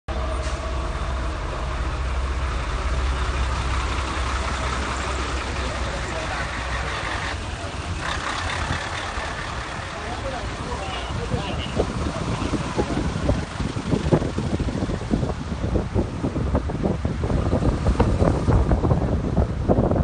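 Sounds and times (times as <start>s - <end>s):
diesel engine idling: 0.1s - 17.4s.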